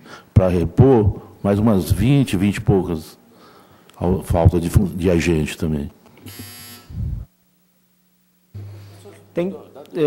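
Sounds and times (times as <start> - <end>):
short electronic buzz: 6.2 - 7.3.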